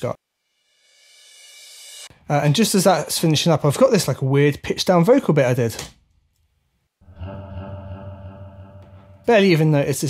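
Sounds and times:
pitched-down vocal sample: 7.0 - 9.7.

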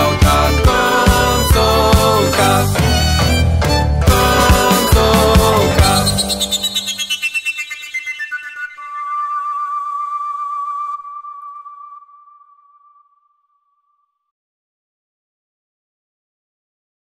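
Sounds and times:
overtone flute notes: 4.1 - 13.8.

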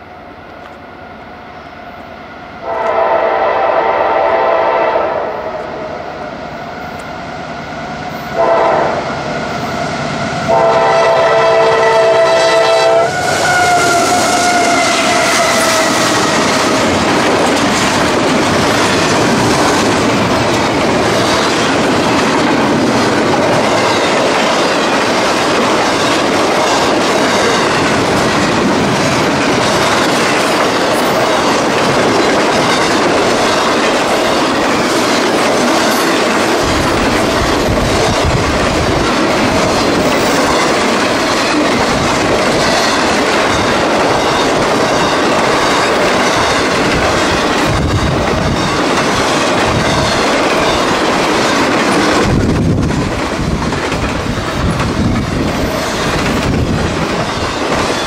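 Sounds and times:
freight train cars clickety-clack: 0.0 - 58.0
locomotive horn blast: 2.6 - 5.8, 8.4 - 9.1, 10.5 - 16.5.

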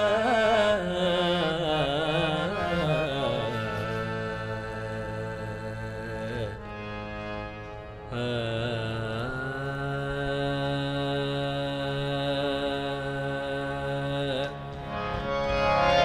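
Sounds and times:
harmonium drone: 0.0 - 16.0.

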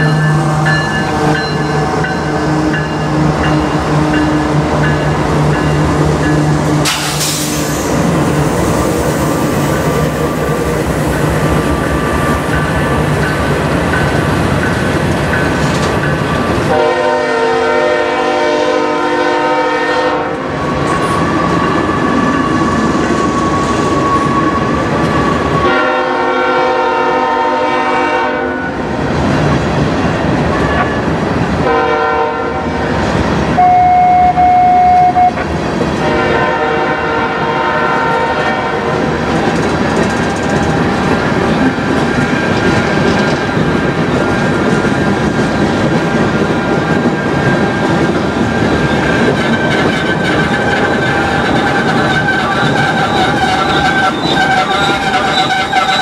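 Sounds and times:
freight train wheels clicking: 0.0 - 16.9, 39.0 - 56.0
train horn: 16.6 - 20.6, 25.6 - 28.8, 31.6 - 32.8, 33.6 - 35.4, 36.0 - 39.1
high steady squeal: 48.8 - 56.0.

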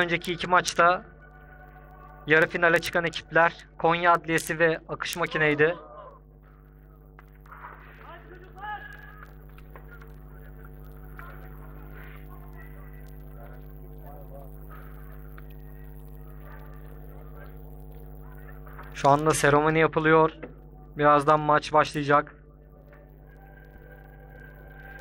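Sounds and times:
steady electrical hum: 0.0 - 25.0.

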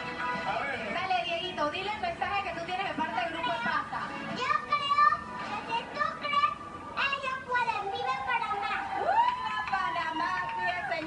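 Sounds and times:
music through tv speaker: 0.0 - 11.0
boy speaking into a microphone: 4.3 - 8.9.

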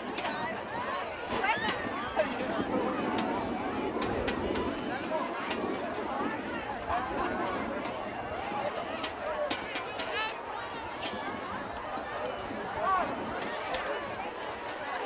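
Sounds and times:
crowd chattering: 0.0 - 15.0.

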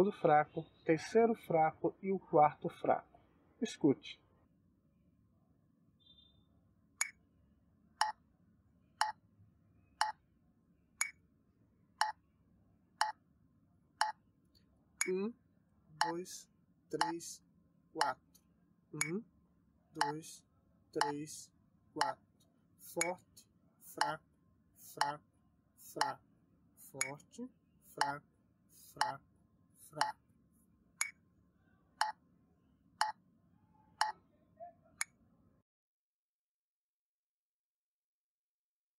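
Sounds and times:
metronome clicking: 17.0 - 17.2.

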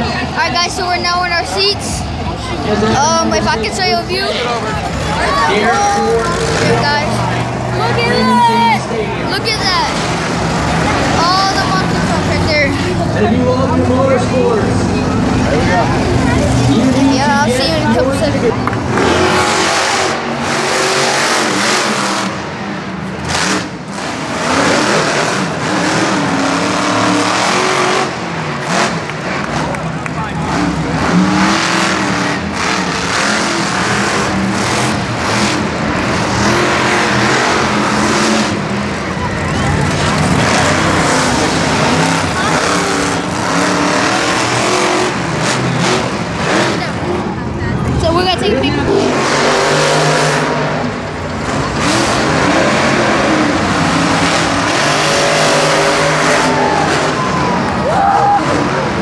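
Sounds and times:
monster truck engines revving: 0.0 - 59.0.

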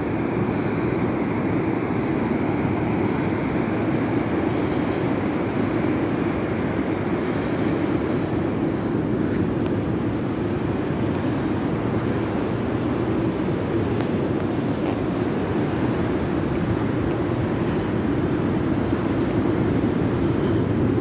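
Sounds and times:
ocean surf breaking: 0.0 - 21.0.

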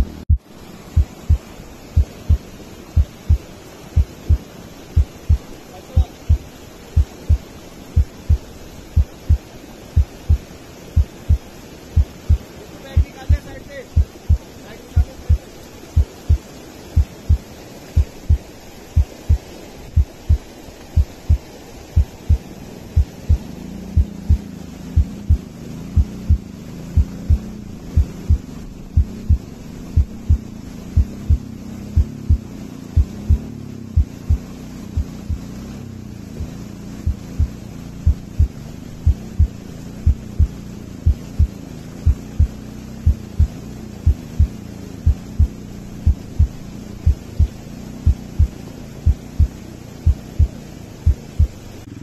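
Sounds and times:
heartbeat thumps: 0.0 - 9.4, 10.0 - 16.4, 17.0 - 35.6, 36.4 - 51.6
stream rushing: 0.0 - 52.0.

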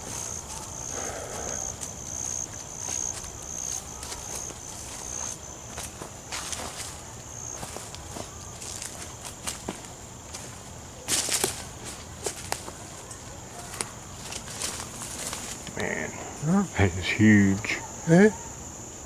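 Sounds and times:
insect pulsing buzz: 0.0 - 6.6
footsteps crunching through leaves: 0.0 - 15.8.

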